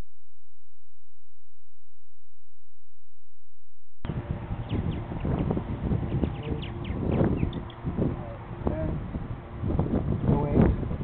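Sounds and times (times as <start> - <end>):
birds chirping: 4.1 - 10.7
wind rumbling on microphone: 4.1 - 11.0.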